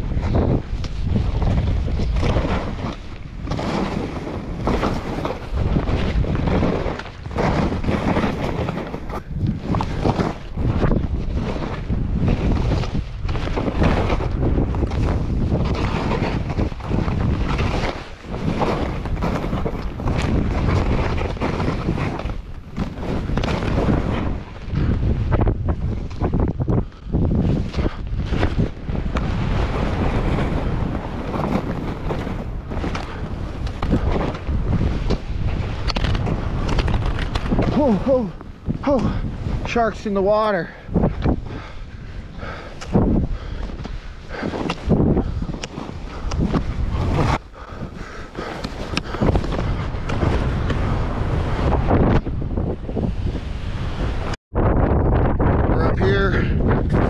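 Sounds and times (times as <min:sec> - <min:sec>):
skis sliding through snow: 0:00.0 - 0:26.4, 0:27.3 - 0:52.2
wind on microphone: 0:00.0 - 0:57.0.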